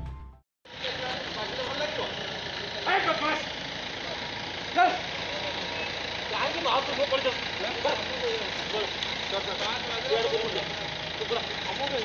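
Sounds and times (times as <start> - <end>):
outdoor street noise: 0.6 - 12.0.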